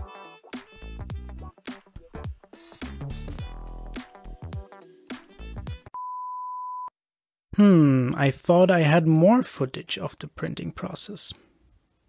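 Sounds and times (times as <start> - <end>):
background music: 0.0 - 6.0
steady test tone beep: 6.0 - 7.0.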